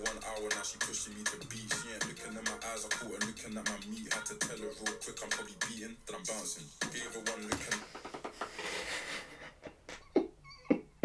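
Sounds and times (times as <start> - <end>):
music: 0.0 - 8.1
man's stifled laughter: 7.8 - 10.9.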